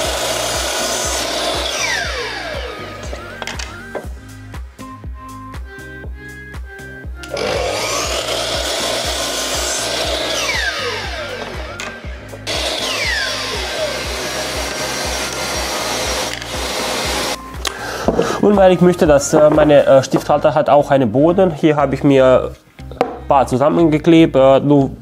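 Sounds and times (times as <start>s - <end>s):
miter saw cutting plywood: 0.0s - 3.2s, 7.3s - 17.4s
background music with steady beat: 0.0s - 25.0s.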